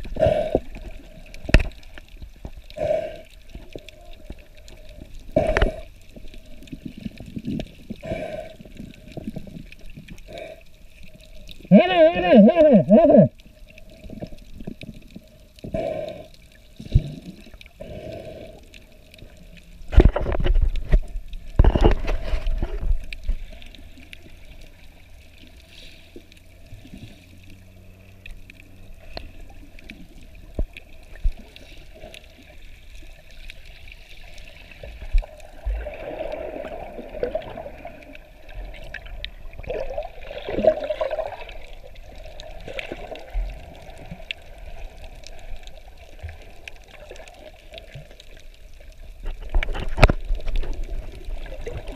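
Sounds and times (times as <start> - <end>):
surges of churning water: 0.0 - 51.9
water sloshing underwater: 0.0 - 51.9.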